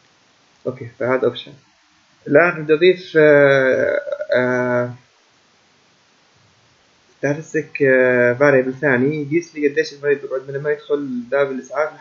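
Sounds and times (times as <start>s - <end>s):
man's drawn-out hesitation sounds: 0.7s - 1.6s, 2.3s - 5.0s, 7.2s - 12.0s.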